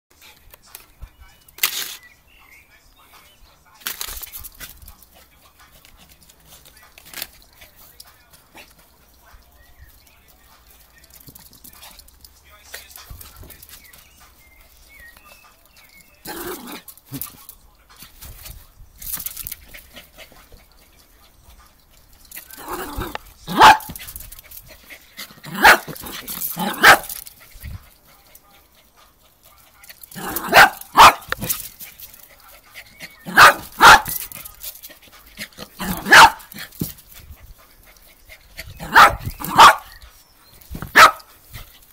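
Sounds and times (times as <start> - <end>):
small dog barking: 22.6 - 24.0, 25.4 - 27.1, 30.2 - 31.5, 33.2 - 34.3, 35.7 - 36.5, 38.8 - 40.0, 40.8 - 41.3.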